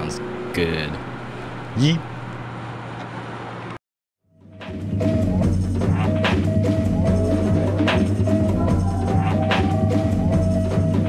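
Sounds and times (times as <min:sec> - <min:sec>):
road noise: 0:00.0 - 0:03.8.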